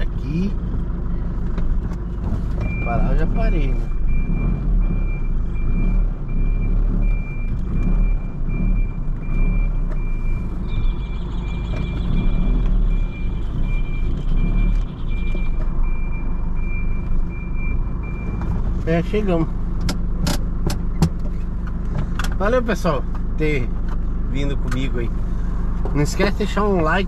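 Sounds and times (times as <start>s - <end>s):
van engine running: 0.0s - 27.0s
reverse alarm beeping: 2.6s - 18.4s.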